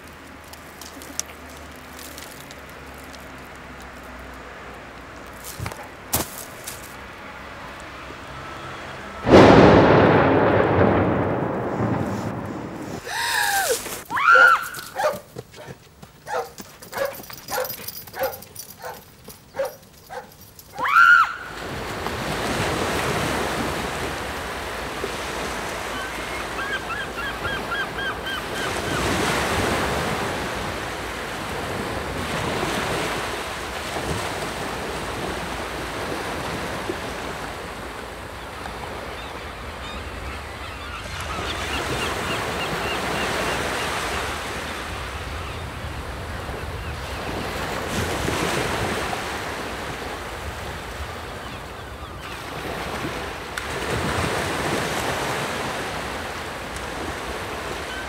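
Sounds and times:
waves washing: 0.0 - 15.6, 16.2 - 58.0.

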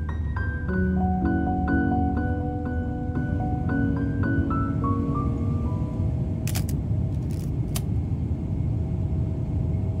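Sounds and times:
airliner engines rumbling: 0.0 - 10.0.

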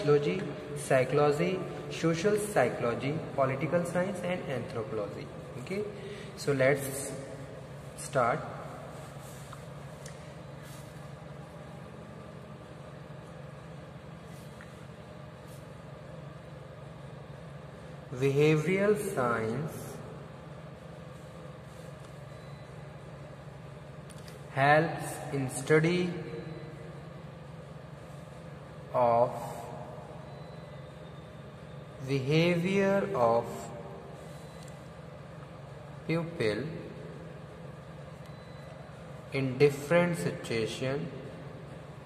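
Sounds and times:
low mechanical hum: 0.0 - 42.0.

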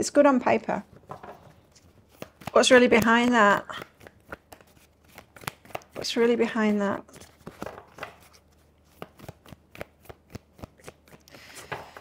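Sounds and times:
cards being shuffled: 0.9 - 12.0.

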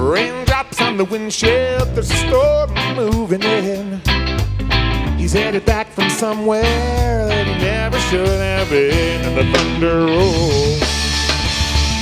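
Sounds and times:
guitar: 0.0 - 12.0
live band playing: 0.0 - 12.0.

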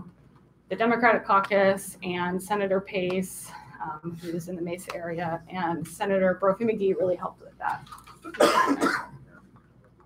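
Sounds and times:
woman coughing into microphone: 8.3 - 9.2.

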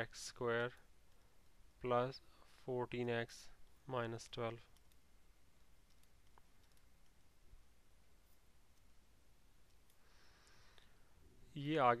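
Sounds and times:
faint room hiss: 0.0 - 12.0
soft clicks: 0.4 - 2.1, 3.5 - 9.0, 9.6 - 11.0.

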